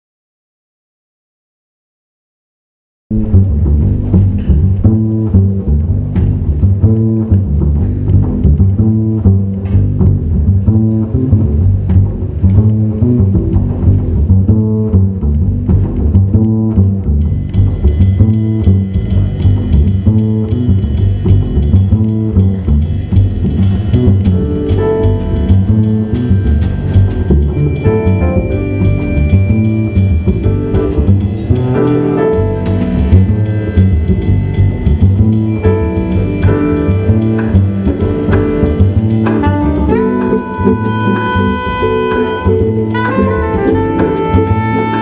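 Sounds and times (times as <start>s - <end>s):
percussion: 3.1s - 45.0s
plucked upright bass: 3.1s - 45.0s
ringing cymbals: 24.4s - 39.2s.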